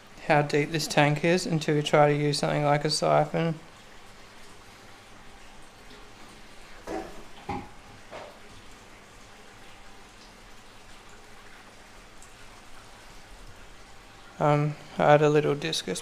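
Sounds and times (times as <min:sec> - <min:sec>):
water trickling: 0:00.0 - 0:16.0.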